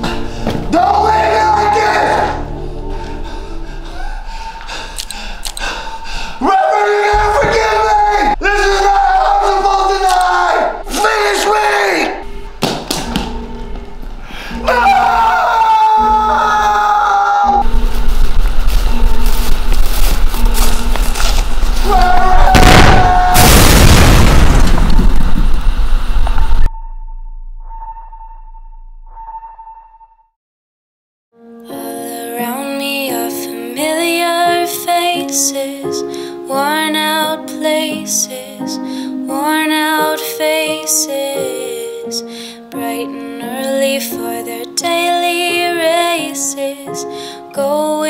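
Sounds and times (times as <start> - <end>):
man screaming: 0.7 - 2.4, 6.4 - 12.2, 14.6 - 17.6, 21.8 - 23.7
loud explosion: 22.4 - 26.7.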